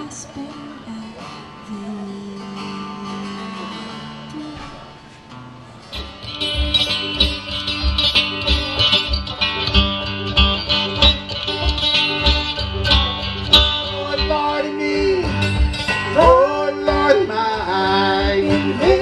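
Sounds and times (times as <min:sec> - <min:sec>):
acoustic guitar: 0:00.0 - 0:19.0
banjo: 0:00.0 - 0:19.0
person singing: 0:11.7 - 0:19.0.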